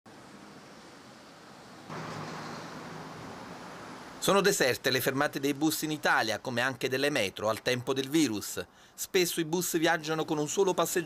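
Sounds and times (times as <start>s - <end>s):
city road traffic: 0.1s - 11.0s
car driving by: 0.2s - 4.2s.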